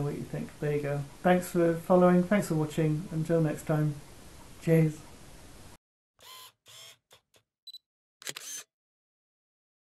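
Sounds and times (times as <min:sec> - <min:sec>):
camera whirs: 0:06.2 - 0:07.2, 0:08.2 - 0:08.7
camera clicks: 0:08.2 - 0:08.7
shutter clicks: 0:08.2 - 0:08.7.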